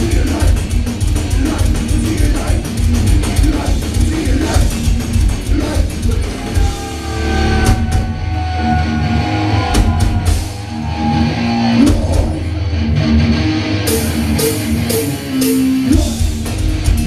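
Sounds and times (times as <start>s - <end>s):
metal band playing live: 0.0s - 17.0s.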